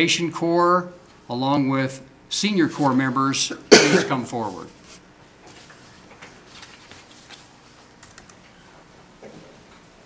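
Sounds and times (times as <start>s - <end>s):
low room hiss: 0.0s - 10.0s
papers and folder being handled: 4.8s - 8.0s.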